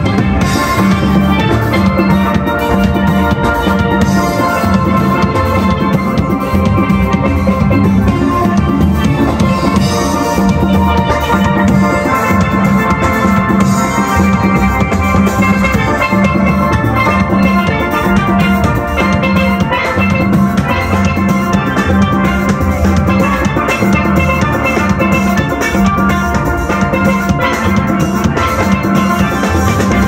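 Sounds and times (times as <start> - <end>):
drum beat: 0.0 - 30.0
steelpans playing melody: 0.0 - 30.0.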